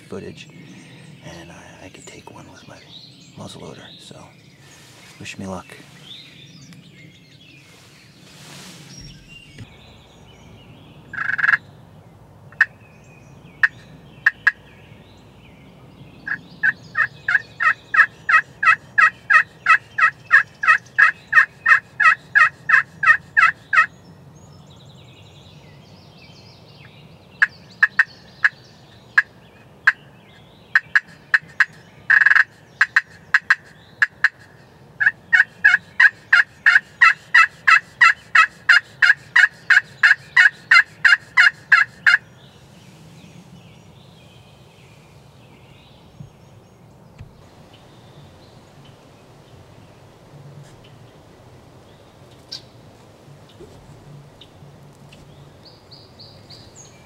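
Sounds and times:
turkey call yelps: 11.1s - 11.6s, 16.3s - 23.9s, 30.8s - 42.2s.

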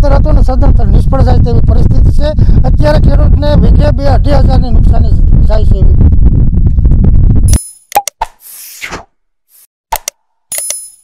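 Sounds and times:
wind rumble on microphone: 0.0s - 7.6s
ringing click effect: 10.0s - 11.0s.

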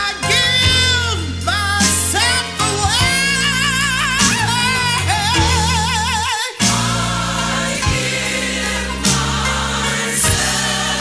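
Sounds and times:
band playing: 0.0s - 11.0s
voices singing in harmony: 2.2s - 11.0s.

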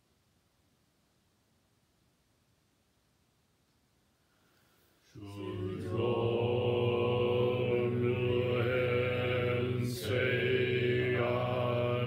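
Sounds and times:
monotone chanting: 5.0s - 12.0s.

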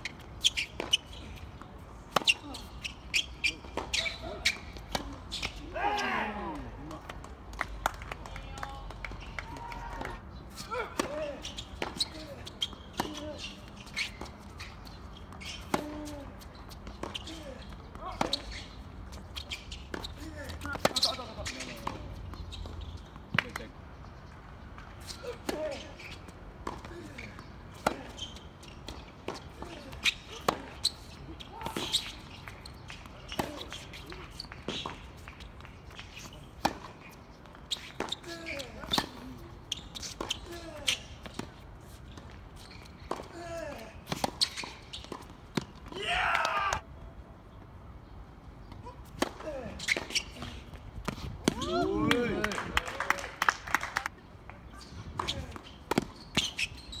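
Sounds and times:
tennis ball bouncing: 0.0s - 2.5s, 11.0s - 13.3s, 15.6s - 17.3s, 26.6s - 31.0s, 31.6s - 39.4s, 40.0s - 43.3s, 55.2s - 56.8s
racket striking tennis ball: 55.2s - 56.6s.

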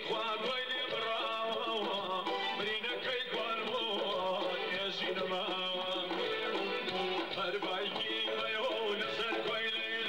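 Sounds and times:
folk music on electronic keyboard: 0.0s - 10.0s.

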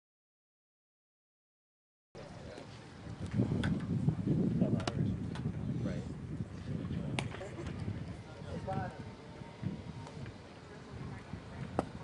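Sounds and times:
people chattering: 2.2s - 12.0s.

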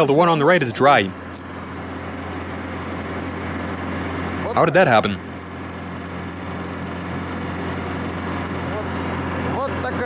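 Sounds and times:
vehicle engine droning: 0.0s - 10.0s.

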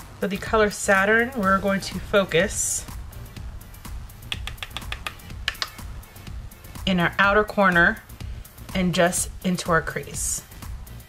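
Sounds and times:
brush tapping on powder palette: 4.3s - 5.8s.

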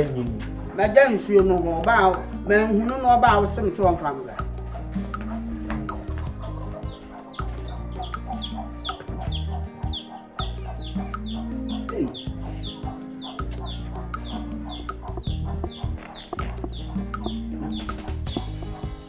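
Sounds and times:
background music with quick beat: 0.0s - 19.0s
hens clucking: 4.3s - 19.0s.

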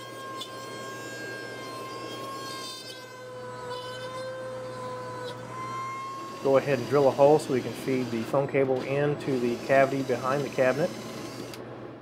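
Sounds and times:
rotary tool cutting wood: 0.0s - 11.6s.

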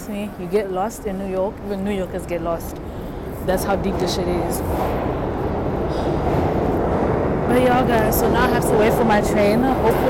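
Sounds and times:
subway train rumbling: 0.0s - 10.0s.

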